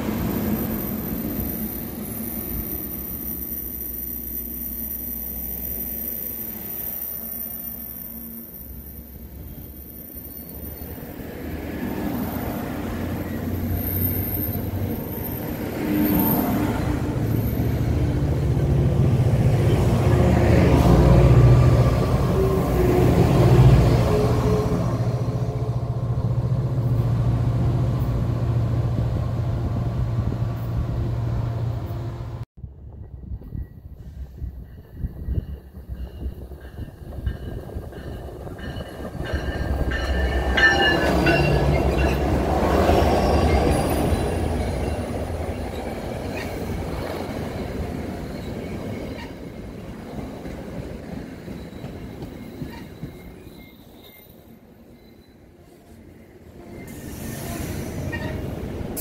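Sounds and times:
train squealing: 0:00.0 - 0:18.7, 0:33.2 - 0:59.0
train coaches rolling past: 0:00.0 - 0:59.0
train locomotive passing: 0:00.0 - 0:59.0.

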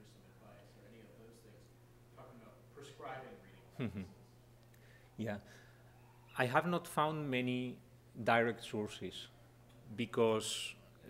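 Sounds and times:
steady low hum: 0:00.0 - 0:11.0
man saying mm-hmm: 0:03.8 - 0:04.1.

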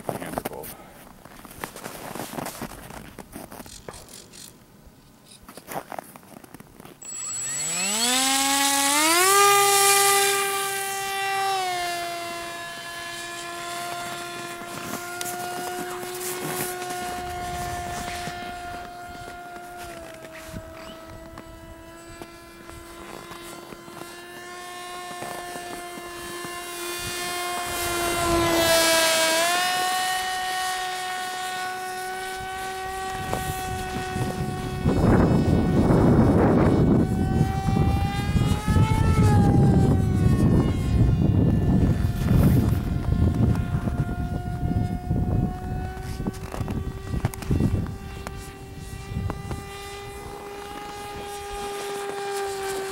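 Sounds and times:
model airplane motor whine: 0:06.4 - 0:52.9.

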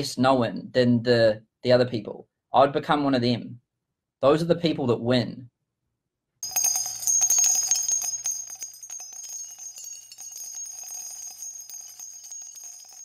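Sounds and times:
jingling bells: 0:06.4 - 0:13.0.

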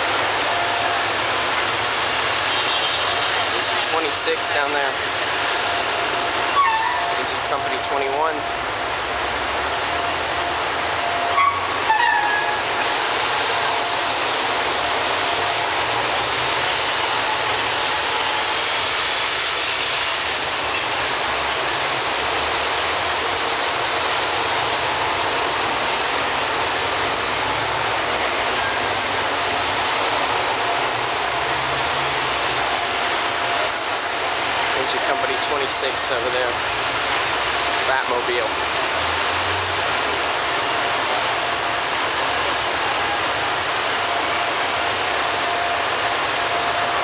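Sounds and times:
diesel fire engines idling: 0:00.0 - 0:47.0
street traffic: 0:00.0 - 0:47.0.

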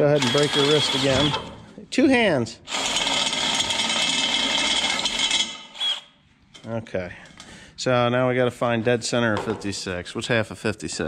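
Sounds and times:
cordless drill boring into wood: 0:00.0 - 0:01.5, 0:02.7 - 0:06.2.

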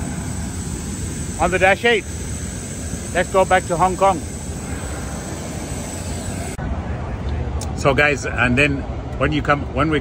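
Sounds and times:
high whine: 0:00.0 - 0:07.9
jet aircraft roar: 0:00.0 - 0:08.3.

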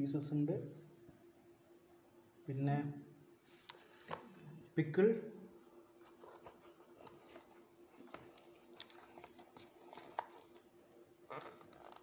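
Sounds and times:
plastic cups crinkling: 0:06.1 - 0:12.0.

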